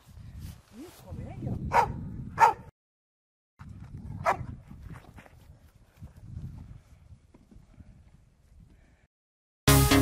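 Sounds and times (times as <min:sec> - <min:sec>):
dog barking: 0:01.7 - 0:02.7, 0:04.2 - 0:04.4.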